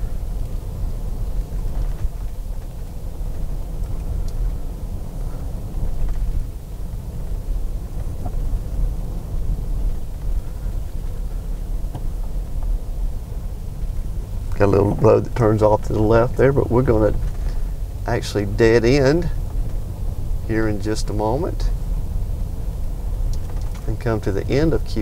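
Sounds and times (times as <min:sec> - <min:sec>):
car engine rumble: 0:00.0 - 0:25.0
tyre noise on paved road: 0:00.0 - 0:25.0.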